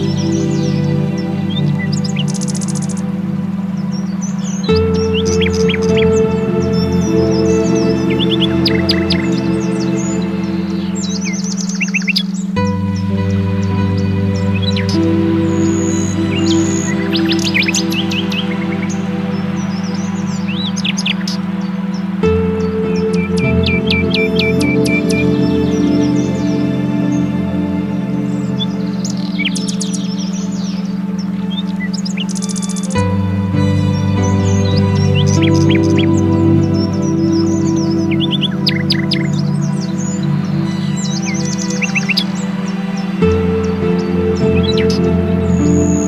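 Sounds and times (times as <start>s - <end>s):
birdsong chirps and trills: 0.0s - 46.0s
steady low drone: 0.0s - 46.0s
synthesizer chords: 0.0s - 46.0s.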